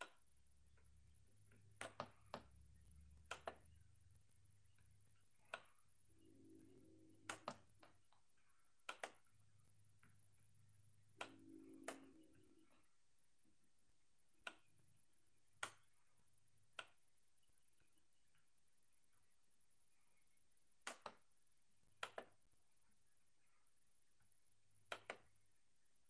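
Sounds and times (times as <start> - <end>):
faint low hum: 0.0 - 26.0
computer mouse clicking: 7.2 - 7.8, 8.8 - 9.3, 11.2 - 12.6, 24.8 - 25.4.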